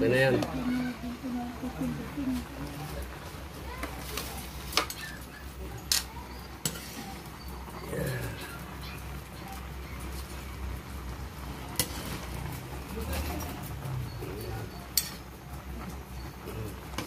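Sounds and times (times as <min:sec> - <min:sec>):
metal spatula tossing noodles in wok: 0:05.9 - 0:07.2, 0:11.1 - 0:13.7, 0:14.9 - 0:15.4
metal clinking on pan: 0:14.9 - 0:15.3.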